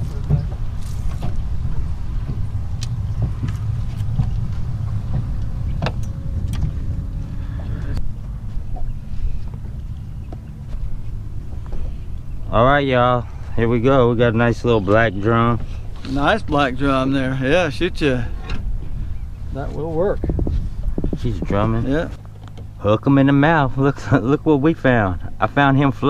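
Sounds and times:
knocks and clatter on boat deck: 0.0s - 12.0s, 19.6s - 22.8s
steady low rumble: 0.0s - 26.0s.

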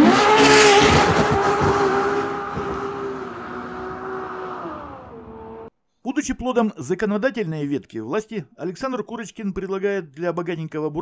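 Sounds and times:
car engine revving hard: 0.0s - 5.7s.

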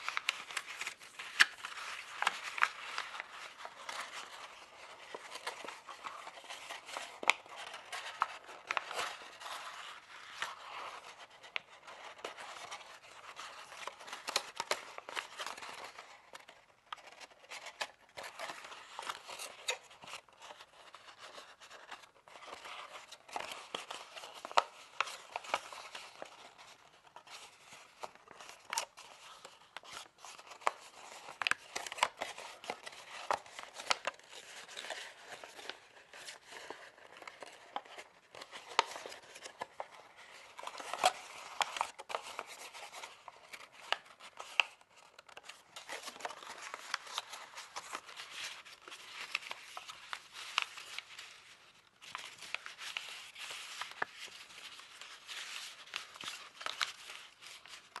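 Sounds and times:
paper crinkling: 0.0s - 58.0s.

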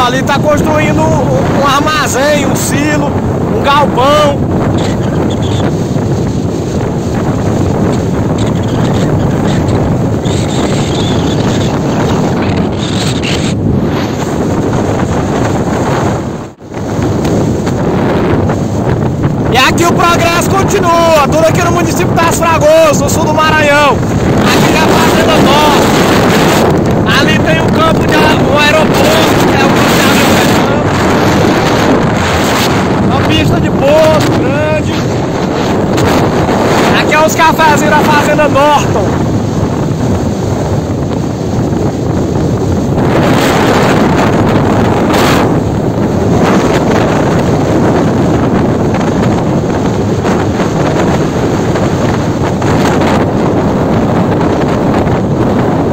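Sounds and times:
wind rushing over microphone: 0.0s - 55.9s
vehicle road noise: 6.8s - 18.5s.

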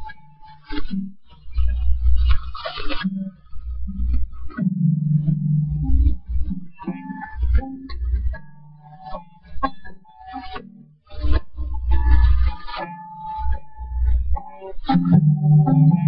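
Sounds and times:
low bass notes: 3.8s - 8.4s
guitar strumming chords: 4.6s - 10.9s, 11.6s - 16.0s.

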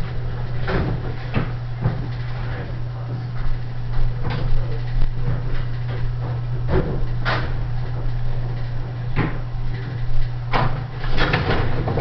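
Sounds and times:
steady low hum: 0.0s - 12.0s
printing press clunks: 10.5s - 12.0s.

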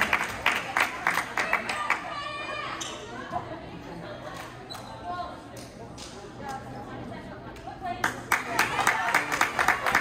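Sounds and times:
spectators talking: 0.0s - 10.0s.

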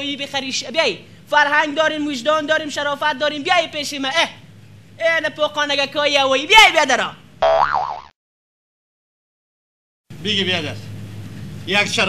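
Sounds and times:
cartoon boing sound effect: 7.4s - 8.1s.

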